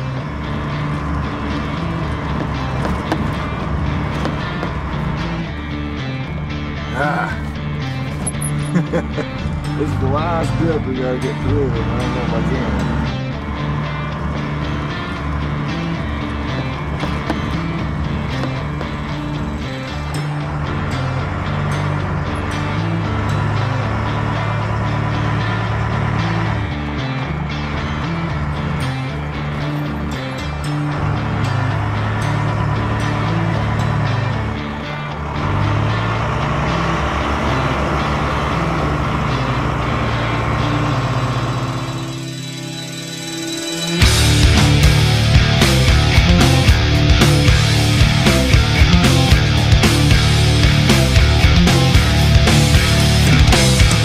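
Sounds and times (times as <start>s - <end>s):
background music with bass line: 0.0s - 54.0s.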